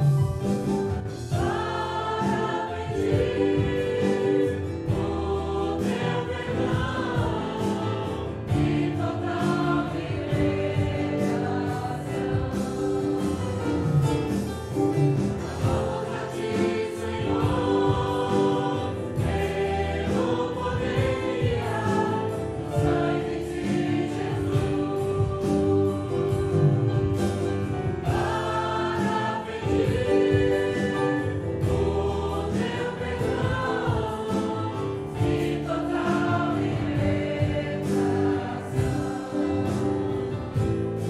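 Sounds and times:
drum kit beat: 0.0s - 41.0s
electric keyboard: 0.0s - 41.0s
group singing a hymn: 0.0s - 41.0s
guitar: 0.0s - 41.0s.

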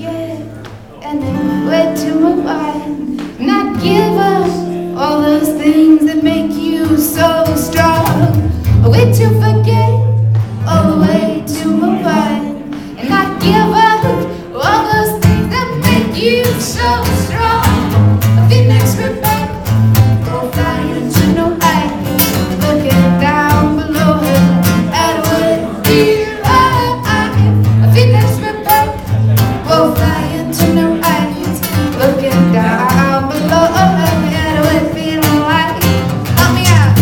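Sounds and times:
acoustic guitars strumming: 0.0s - 37.0s
people singing: 0.0s - 37.0s.

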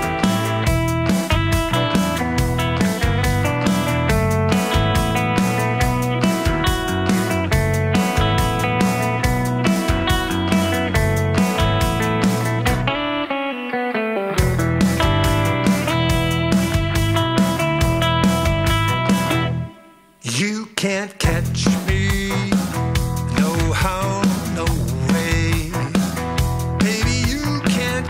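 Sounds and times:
light rock band playing: 0.0s - 20.2s, 21.2s - 28.0s
guitar: 0.0s - 28.0s.

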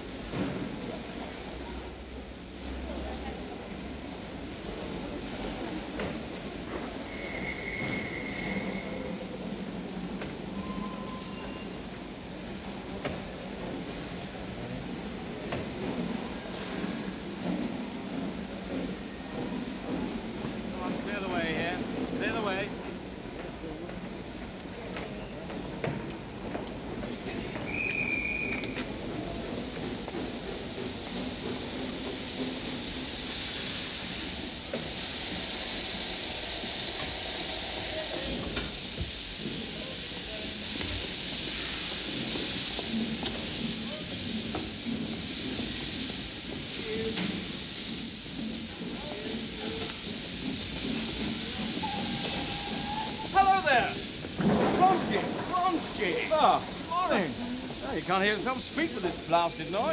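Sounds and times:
steam locomotive hissing: 0.0s - 59.9s
short high whistle tone: 7.0s - 9.1s, 10.6s - 11.8s, 27.7s - 28.8s.

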